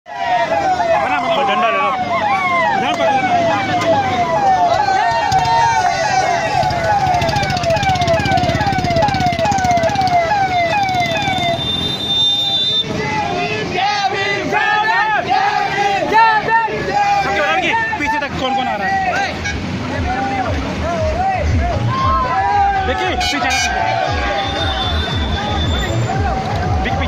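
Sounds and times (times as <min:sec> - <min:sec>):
people shouting: 0:00.1 - 0:11.6, 0:12.5 - 0:27.0
electronic siren yelping: 0:00.1 - 0:12.8.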